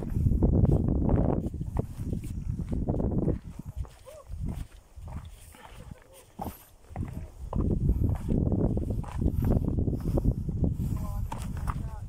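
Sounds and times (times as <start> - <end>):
footsteps on rocky dirt trail: 0.0 - 12.0
low rumbling microphone noise: 0.0 - 12.0.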